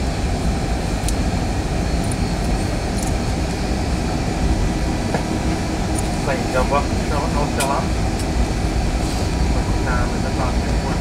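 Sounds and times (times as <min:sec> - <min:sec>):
airplane rolling on runway: 0:00.0 - 0:11.0.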